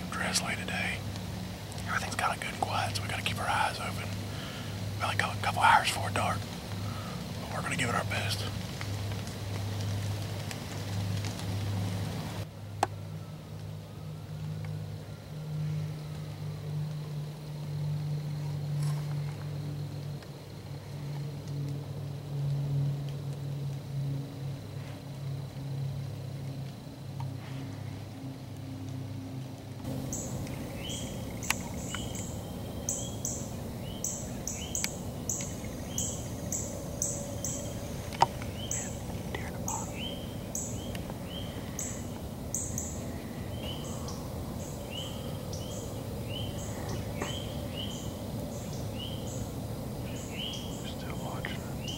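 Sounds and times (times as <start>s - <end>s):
steady low hum: 0.0s - 51.9s
bird chirping: 29.9s - 51.9s.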